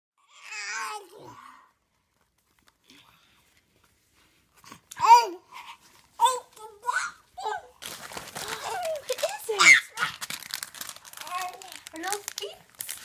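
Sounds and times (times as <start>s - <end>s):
candy packaging crinkling: 7.7s - 13.0s
toddler squealing and babbling: 8.6s - 10.2s.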